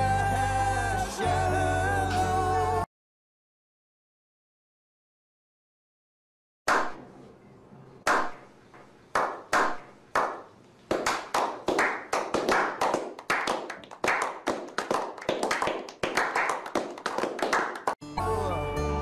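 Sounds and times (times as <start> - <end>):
group hand clapping: 9.1 - 18.0.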